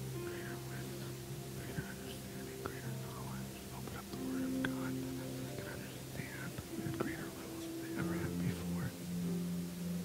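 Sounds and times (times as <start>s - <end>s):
soft music of held chords: 0.0s - 10.0s.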